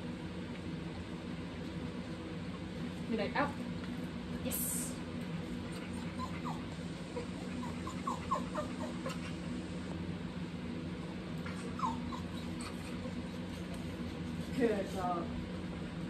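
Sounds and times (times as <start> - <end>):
steady low hum: 0.0 - 16.0
dog whining: 5.6 - 9.6, 11.4 - 14.2.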